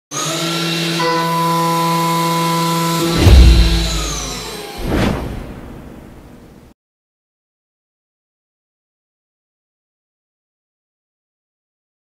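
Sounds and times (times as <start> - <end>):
deep boom: 3.0 - 4.4
sweeping hit: 3.0 - 6.4.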